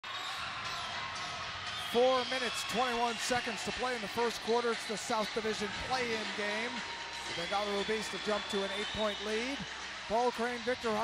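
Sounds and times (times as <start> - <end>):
murmur of crowd voices: 0.4 - 11.0.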